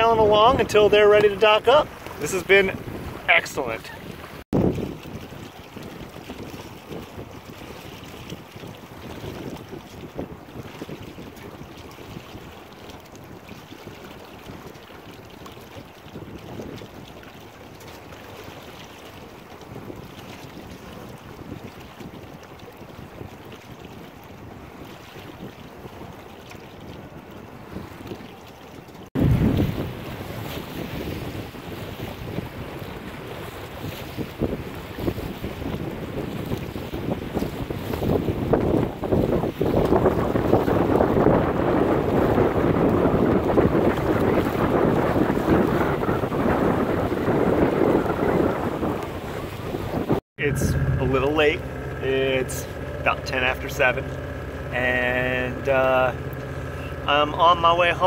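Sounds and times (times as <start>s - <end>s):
river water washing: 0.0s - 58.0s
wind buffeting microphone: 0.0s - 58.0s.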